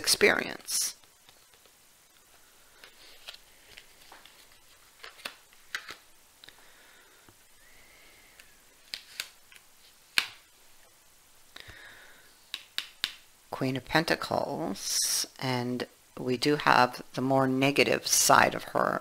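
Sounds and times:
cards clicking and flicking: 0:08.3 - 0:10.4.

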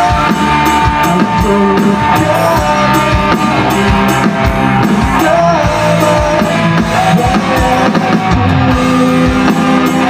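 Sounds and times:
drum kit steady beat: 0:00.0 - 0:10.0
live rock band playing: 0:00.0 - 0:10.0.

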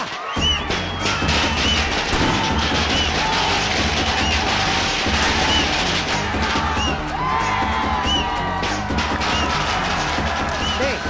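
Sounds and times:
firecrackers cracking: 0:00.0 - 0:11.0.

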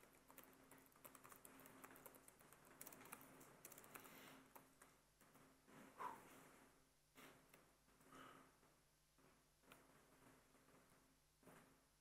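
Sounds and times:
computer keyboard typing: 0:00.0 - 0:05.3.

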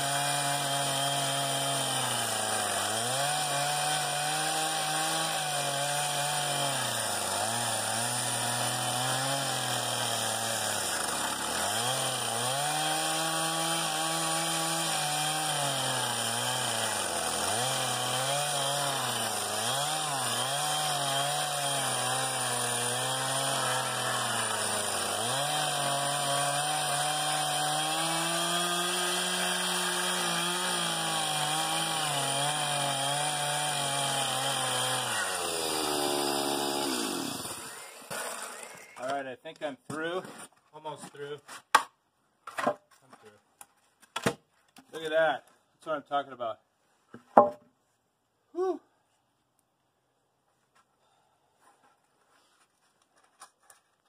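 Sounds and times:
chainsaw cutting log: 0:00.0 - 0:40.5.

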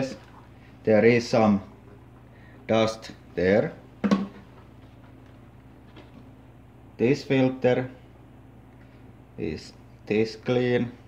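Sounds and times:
faint low hum: 0:00.0 - 0:11.0
plastic knock: 0:04.0 - 0:04.4.

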